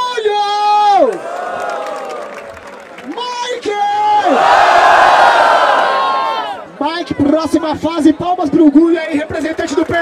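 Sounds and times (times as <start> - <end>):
crowd cheering and yelling: 0.0 - 10.0.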